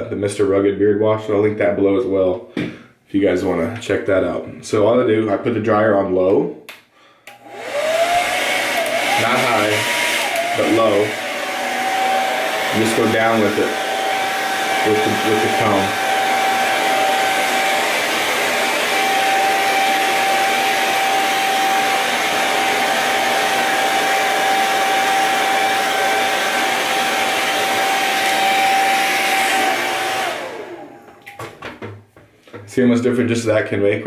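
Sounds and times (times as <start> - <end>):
hair dryer whining: 7.2 - 32.0.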